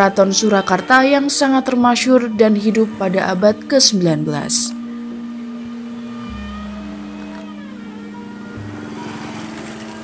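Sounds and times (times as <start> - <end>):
held synthesizer chords: 0.0 - 10.0.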